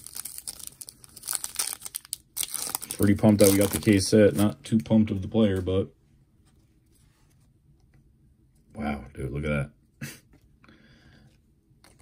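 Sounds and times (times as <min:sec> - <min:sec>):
foil wrapper tearing and crinkling: 0:00.0 - 0:04.5.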